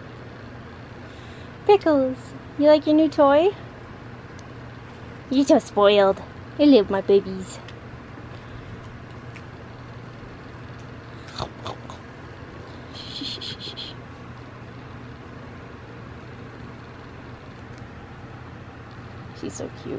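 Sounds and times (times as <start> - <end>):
low room hum: 0.0 - 19.9
high chirping pulses: 12.9 - 14.0.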